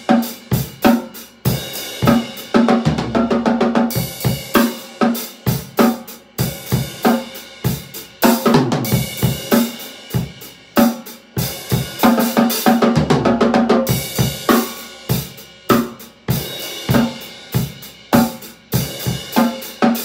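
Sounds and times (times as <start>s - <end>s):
bass drum: 0.0s - 4.8s, 5.4s - 10.5s, 11.4s - 19.7s
fast drum roll: 0.0s - 20.0s
snare drum: 0.0s - 20.0s.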